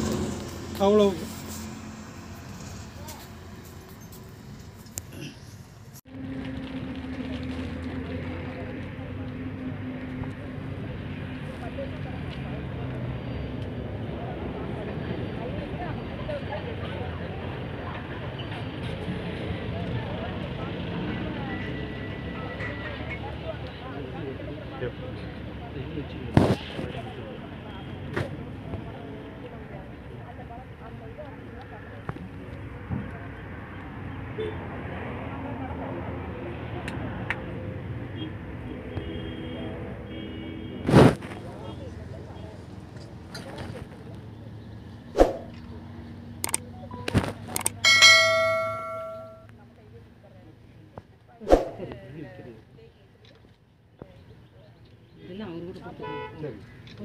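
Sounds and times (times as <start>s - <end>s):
small metal bell ringing: 47.8s - 49.5s.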